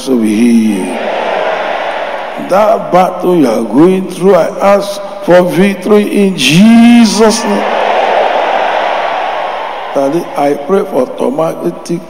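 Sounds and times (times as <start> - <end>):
congregation responding together: 0.8 - 2.6, 7.1 - 10.7.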